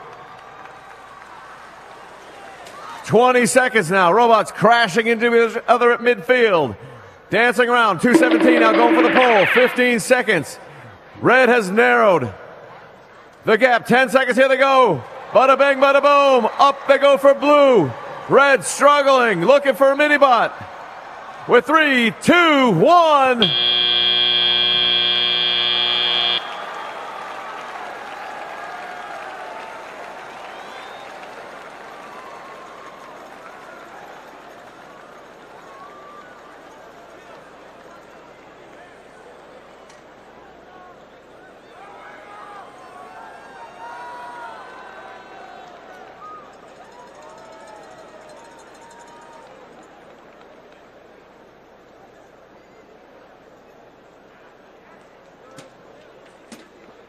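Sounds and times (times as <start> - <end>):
arena crowd noise and voices: 0.0 - 23.6, 24.8 - 57.0
buzzer steady tone: 8.1 - 10.1, 23.4 - 26.6.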